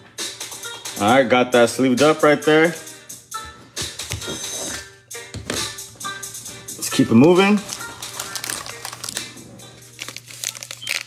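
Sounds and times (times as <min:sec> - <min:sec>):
faint background music: 0:00.0 - 0:11.0
card pack and cardboard rustling: 0:07.0 - 0:09.4, 0:10.0 - 0:11.0.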